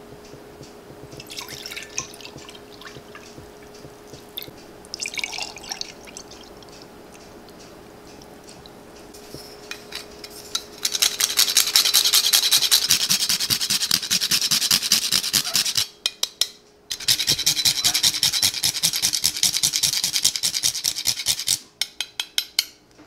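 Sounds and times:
cinnamon stick grated on metal grater: 10.8 - 15.9, 16.9 - 21.6.

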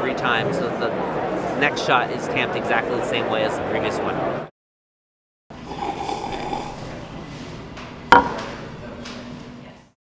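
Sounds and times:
sharp knock with ring: 8.1 - 8.5.

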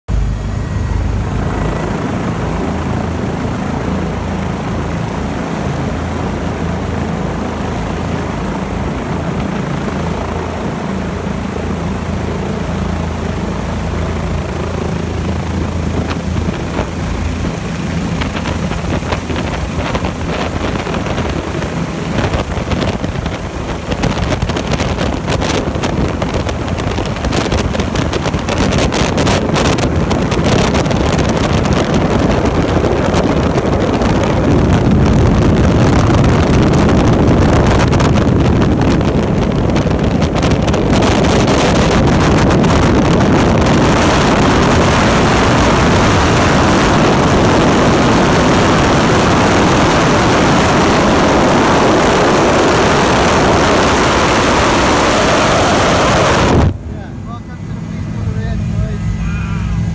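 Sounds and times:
helicopter engine and rotor drone: 0.1 - 59.9
rapid rotor fluttering: 0.1 - 59.9.

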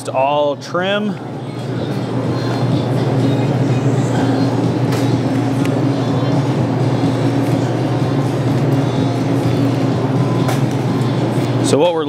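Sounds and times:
loud mechanical hum: 0.0 - 12.0.

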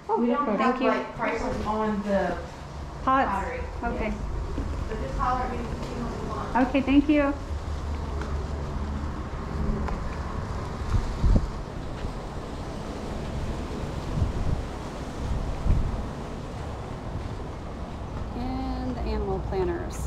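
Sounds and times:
wind buffeting microphone: 0.7 - 20.0.

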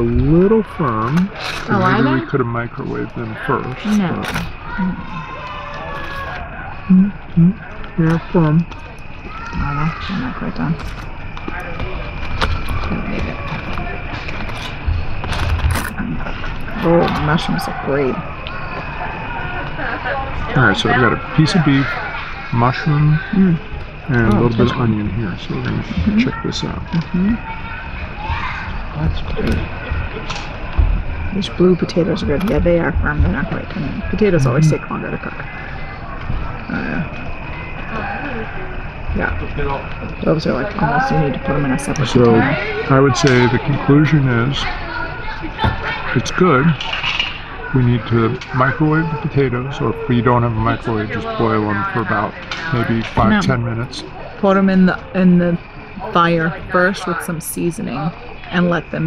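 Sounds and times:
thin steady high tone: 0.0 - 59.0
person murmuring: 6.9 - 8.2.

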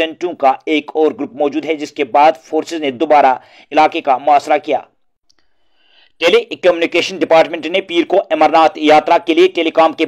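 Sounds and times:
man reading news: 0.0 - 4.9, 5.8 - 10.0.

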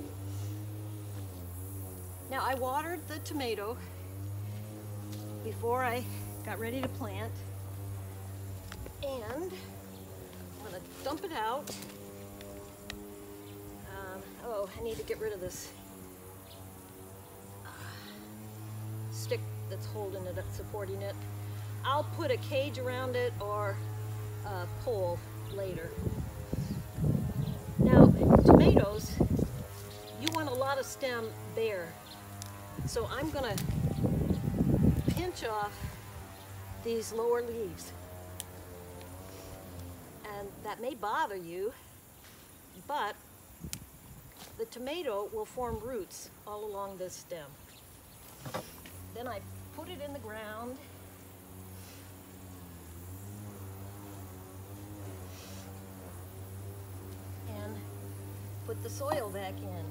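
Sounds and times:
droning hum: 0.0 - 59.9.

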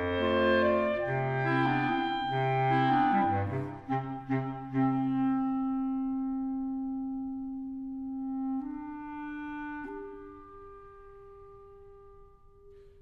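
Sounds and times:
clarinet quartet playing: 0.0 - 12.8.

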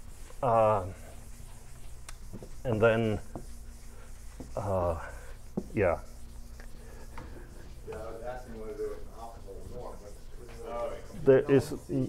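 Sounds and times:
eraser rubbing on blackboard: 0.0 - 12.0.

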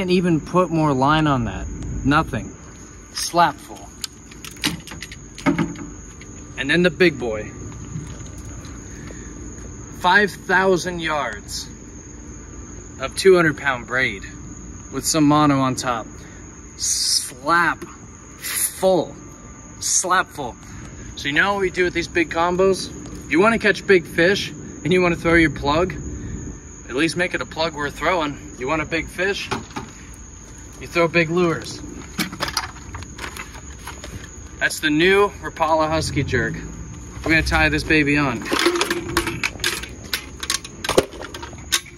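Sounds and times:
low rumble: 35.2 - 40.6.

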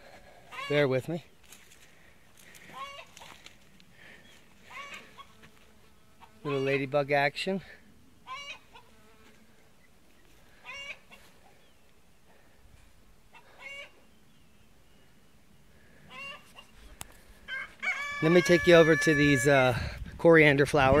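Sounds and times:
chickens clucking: 2.6 - 3.4, 4.3 - 5.4, 8.2 - 8.9, 10.6 - 11.6, 13.3 - 14.1, 16.0 - 19.4.

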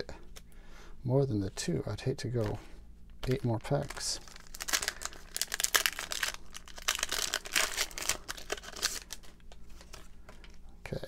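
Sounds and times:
foil wrapper crinkling and tearing: 3.2 - 10.1.

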